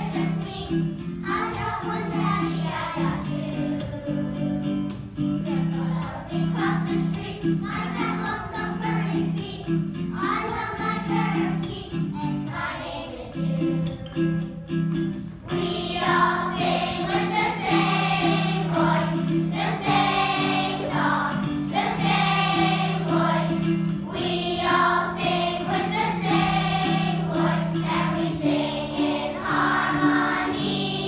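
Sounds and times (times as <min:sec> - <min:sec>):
children's choir singing: 0:00.0 - 0:31.0
instrumental accompaniment: 0:00.0 - 0:31.0.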